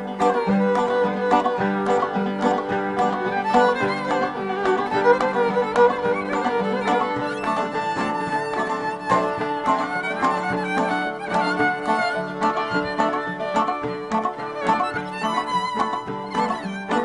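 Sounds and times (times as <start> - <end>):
accordion: 0.0 - 17.0
hand drum: 0.0 - 17.0
plucked strings: 0.0 - 17.0
violin melody: 0.0 - 17.0.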